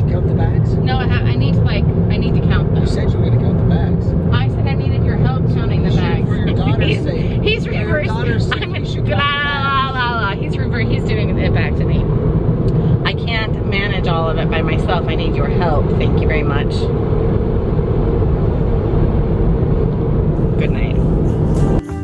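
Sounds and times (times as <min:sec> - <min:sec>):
road and engine rumble in car: 0:00.0 - 0:22.0
music: 0:20.4 - 0:22.0.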